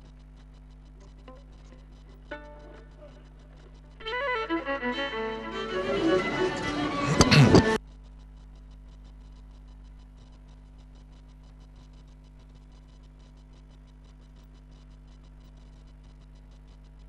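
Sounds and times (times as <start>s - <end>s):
faint steady hum: 0.0s - 17.0s
violin music: 4.0s - 7.8s.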